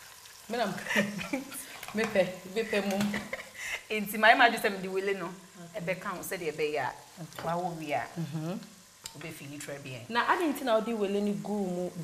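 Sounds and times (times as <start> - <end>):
faint hiss: 0.0 - 12.0
women talking: 0.5 - 8.1, 9.2 - 12.0.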